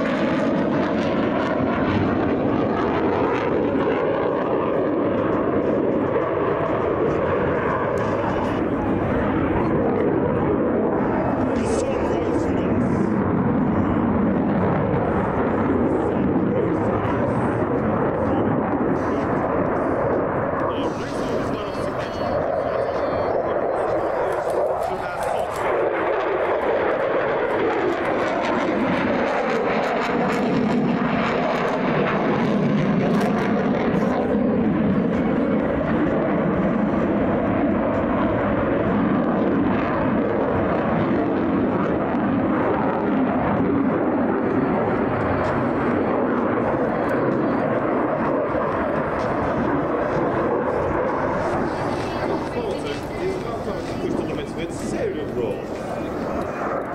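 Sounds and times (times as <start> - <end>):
fighter jet flying overhead: 0.0 - 56.9.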